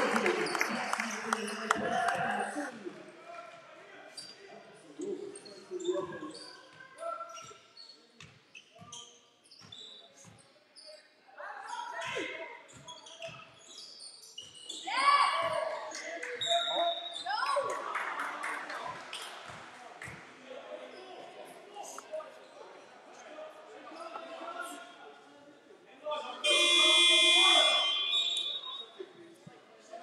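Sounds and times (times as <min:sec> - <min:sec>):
shoe squeaks: 0:05.3 - 0:17.4
voices calling out: 0:26.2 - 0:28.9.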